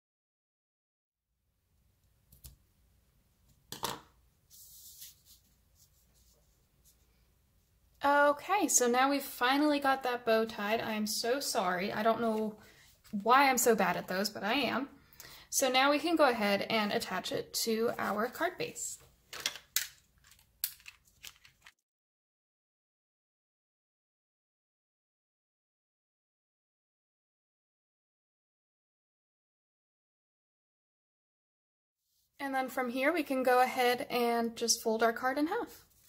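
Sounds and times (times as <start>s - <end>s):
paper crackling rustles: 4.5s - 6.4s, 20.2s - 21.8s
card sliding across a mat: 4.5s - 7.1s.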